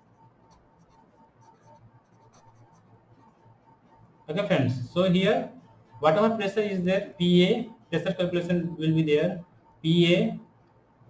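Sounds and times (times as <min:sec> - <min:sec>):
pen scratching on paper: 0:00.1 - 0:04.2.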